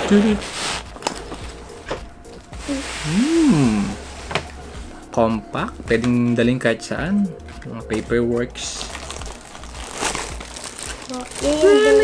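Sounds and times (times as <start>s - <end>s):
person speaking: 2.6s - 4.0s
plastic packaging crinkling: 8.6s - 12.0s.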